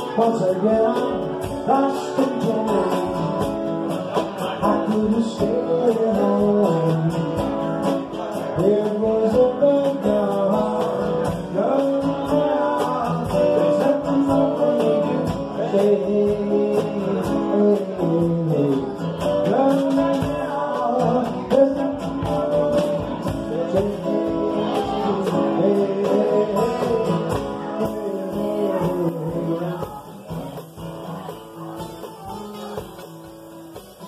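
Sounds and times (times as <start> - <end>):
drum and cymbal beat: 0.0 - 34.0
strummed acoustic guitars: 0.0 - 34.0.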